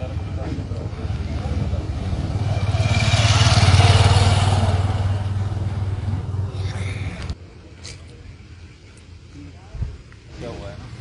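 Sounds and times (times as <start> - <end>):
vehicle engine passing by: 0.6 - 7.4.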